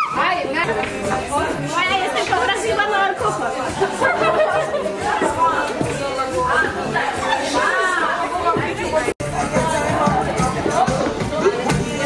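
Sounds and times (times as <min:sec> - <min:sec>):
women chattering: 0:00.0 - 0:12.0.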